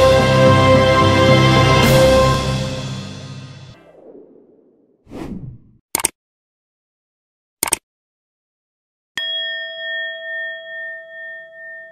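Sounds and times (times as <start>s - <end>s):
bell-like ding ringing: 9.2s - 11.9s.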